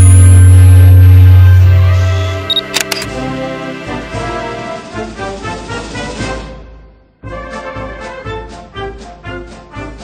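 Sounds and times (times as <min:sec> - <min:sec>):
deep bass tone: 0:00.0 - 0:02.6
intro music: 0:00.0 - 0:05.0
camera autofocus beep: 0:02.5 - 0:03.1
camera shutter clicks: 0:02.5 - 0:03.1.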